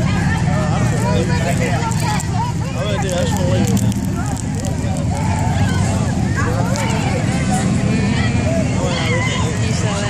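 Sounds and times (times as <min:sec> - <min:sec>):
cars passing slowly: 0:00.0 - 0:10.0
people chattering: 0:00.0 - 0:10.0.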